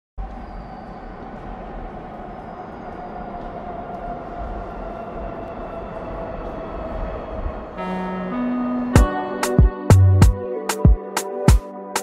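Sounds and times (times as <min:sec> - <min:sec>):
subway train rumble: 0:00.2 - 0:11.5
music: 0:07.8 - 0:12.0.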